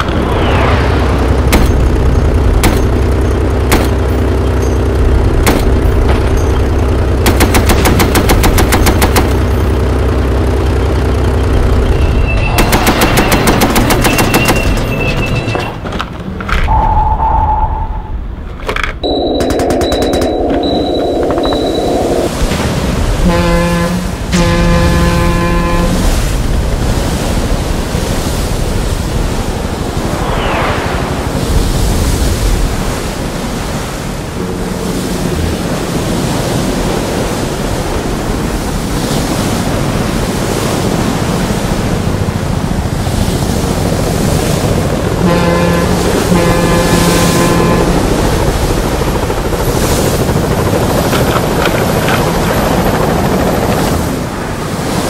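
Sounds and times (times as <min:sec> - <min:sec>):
rapid machine-gun fire: 0:07.2 - 0:09.4, 0:12.6 - 0:15.0
steady rushing noise: 0:17.8 - 0:55.0
electronic beeps and tones: 0:19.0 - 0:22.4
short horn-like sounding: 0:23.2 - 0:26.3, 0:45.2 - 0:48.0.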